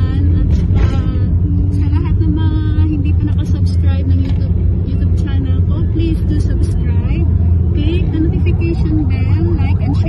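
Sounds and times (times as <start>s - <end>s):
car cabin rumble: 0.0s - 10.0s
woman talking: 0.0s - 10.0s.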